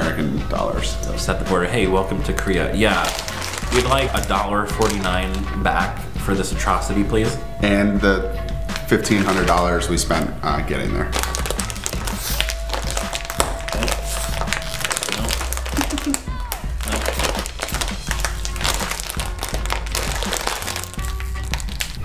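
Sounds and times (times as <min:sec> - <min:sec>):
music with bass beat: 0:00.0 - 0:10.2, 0:10.9 - 0:22.0
plastic packet crinkling and tearing: 0:02.8 - 0:05.5, 0:11.1 - 0:22.0.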